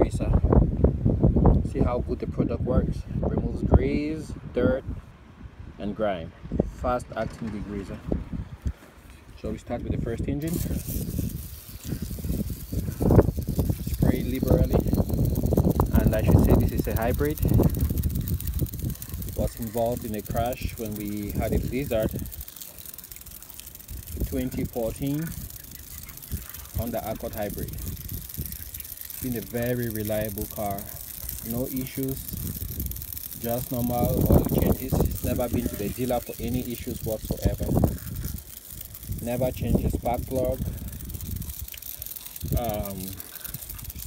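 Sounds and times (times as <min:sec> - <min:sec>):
aerosol can spraying: 0:10.4 - 0:44.0
small clicks: 0:10.4 - 0:44.0.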